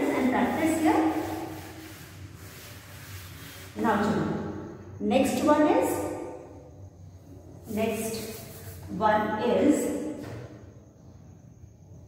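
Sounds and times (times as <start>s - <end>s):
duster rubbing a chalkboard: 0.0s - 4.4s, 7.6s - 9.0s.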